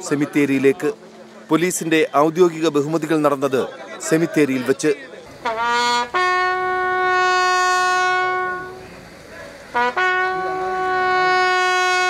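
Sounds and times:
bugle long held note: 5.4s - 9.0s, 9.7s - 12.0s.

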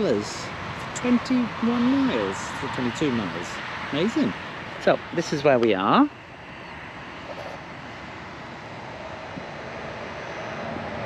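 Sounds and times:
distant engine noise: 0.0s - 11.0s.

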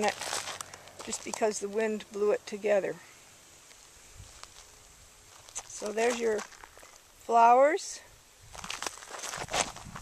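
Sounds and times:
footsteps on dry grass: 0.0s - 1.8s, 3.6s - 7.2s, 8.5s - 10.0s.

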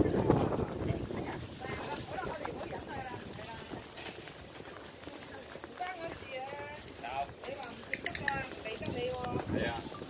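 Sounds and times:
people talking: 0.0s - 4.1s, 5.0s - 10.0s
footsteps on brick paving: 0.0s - 10.0s.

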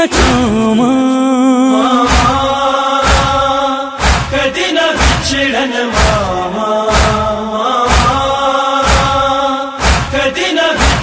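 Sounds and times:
chest-beating slaps: 2.1s - 2.4s, 3.0s - 3.4s, 4.0s - 6.3s, 6.9s - 7.3s, 7.9s - 8.2s, 8.8s - 11.0s.

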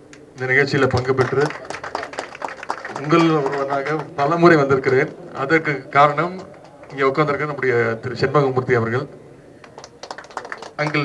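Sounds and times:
man's amplified speech: 0.4s - 1.6s, 2.9s - 9.2s, 10.8s - 11.0s.

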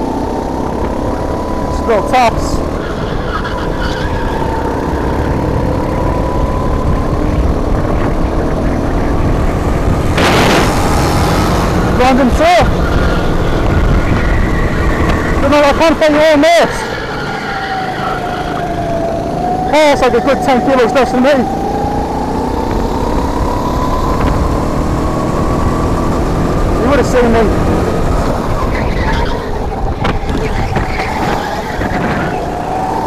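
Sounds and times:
kart engine droning: 0.0s - 33.0s.

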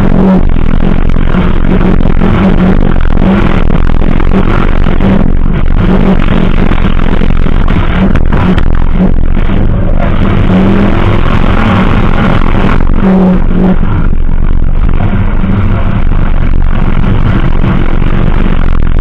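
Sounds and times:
race car engine under throttle: 0.0s - 19.0s.

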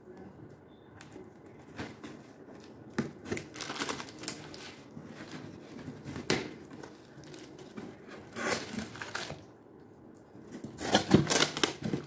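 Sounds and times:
cardboard flaps crinkling and scraping: 1.6s - 9.4s
tape tearing: 6.8s - 9.4s, 10.6s - 12.0s
scissors cutting packing tape: 10.7s - 12.0s.

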